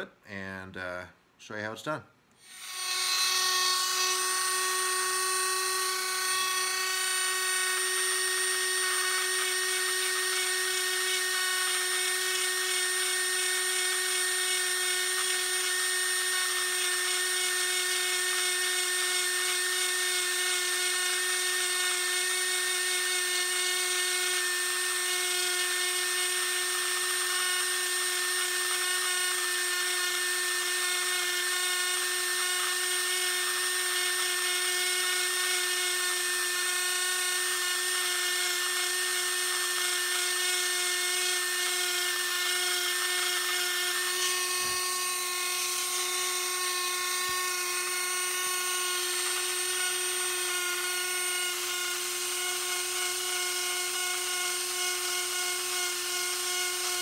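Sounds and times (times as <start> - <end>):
rotary tool high-pitched whine: 2.4 - 57.0.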